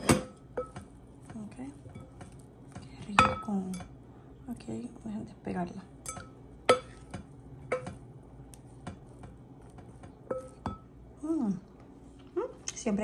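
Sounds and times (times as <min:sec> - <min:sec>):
utensil clinking against bowl: 0:00.0 - 0:04.0, 0:06.0 - 0:08.1, 0:08.8 - 0:10.9.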